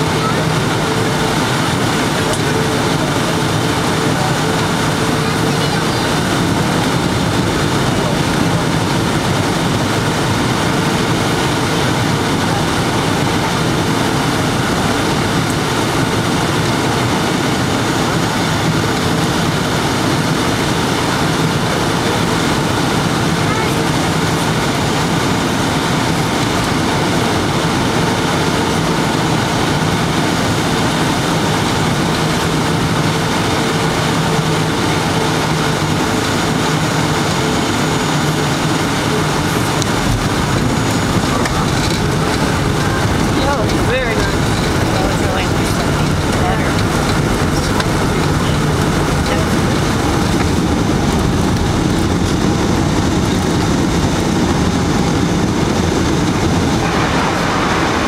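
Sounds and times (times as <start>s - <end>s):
jet engines and airflow rushing: 0.0s - 58.0s
steady hums: 0.0s - 58.0s.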